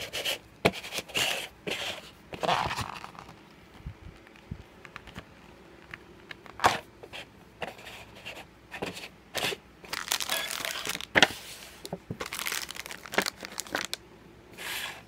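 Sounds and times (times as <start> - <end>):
plastic and foil crinkling: 9.4 - 14.0.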